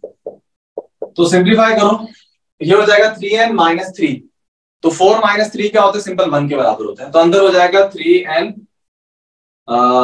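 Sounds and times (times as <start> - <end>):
man speaking: 1.1 - 4.2.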